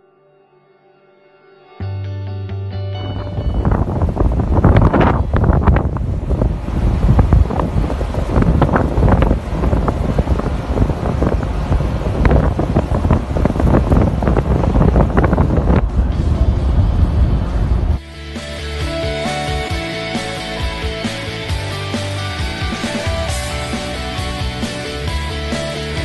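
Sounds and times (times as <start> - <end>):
water rushing along hull: 3.0 - 15.9
wind buffeting microphone: 3.0 - 18.0
steady low rumble: 3.0 - 26.0.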